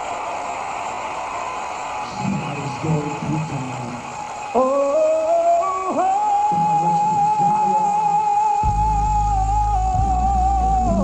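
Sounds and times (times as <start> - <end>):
steady hiss: 0.0 - 8.8.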